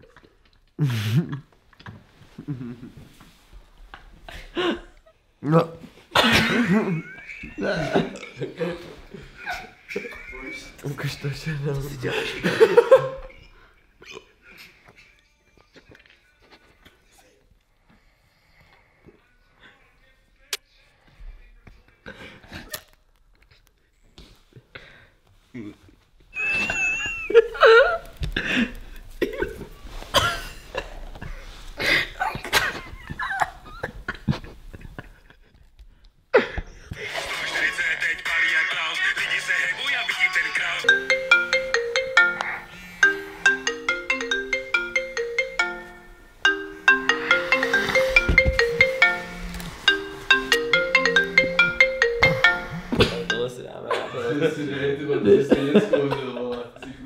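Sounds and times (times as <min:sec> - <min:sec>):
marimba-like phone ringtone: 0:40.0 - 0:53.6.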